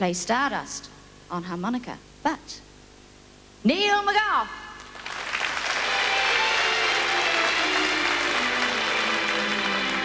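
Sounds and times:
audience applauding: 0:04.8 - 0:10.0
orchestra playing slow introduction: 0:05.4 - 0:10.0.

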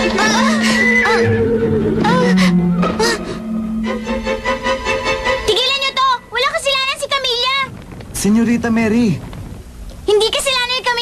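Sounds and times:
background music: 0:00.0 - 0:06.4.

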